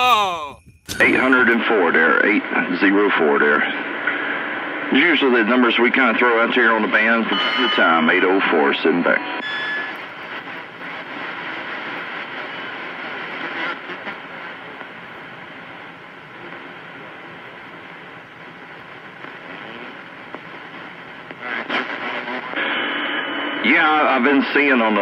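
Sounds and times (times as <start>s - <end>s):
radio crackles: 0.9s - 25.0s
radio static hiss: 0.9s - 25.0s.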